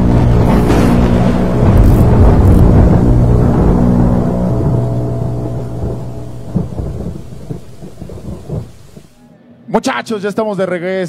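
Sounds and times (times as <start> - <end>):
low rumble: 0.0 - 9.2
held low music chord: 0.0 - 9.7.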